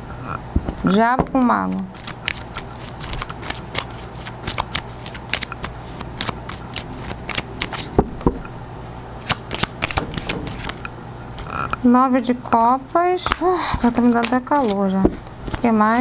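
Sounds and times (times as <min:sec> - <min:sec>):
cards being shuffled: 0:00.7 - 0:08.4, 0:09.2 - 0:11.6, 0:13.2 - 0:15.8.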